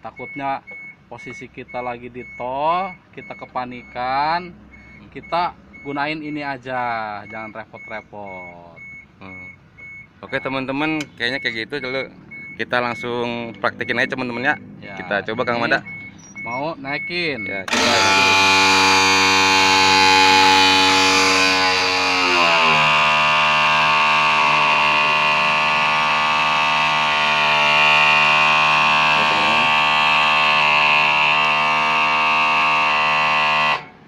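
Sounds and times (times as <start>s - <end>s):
hydraulic pump humming: 17.7s - 34.0s.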